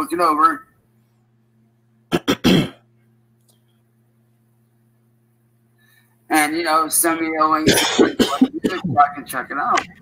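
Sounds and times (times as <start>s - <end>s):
faint steady hum: 0.0s - 10.0s
man clearing his throat: 2.1s - 2.8s, 7.6s - 9.1s.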